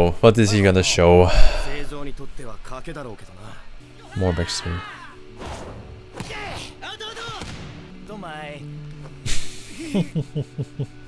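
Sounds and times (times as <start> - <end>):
background music: 0.0 - 11.0
man laughing: 9.3 - 10.9.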